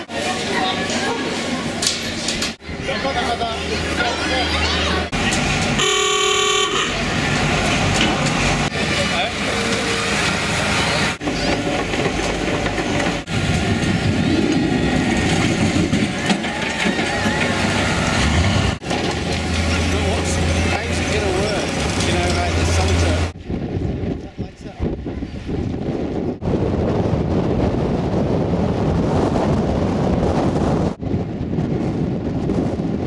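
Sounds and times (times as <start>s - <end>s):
crowd chatter: 0.0s - 12.0s
horn blast: 5.8s - 7.1s.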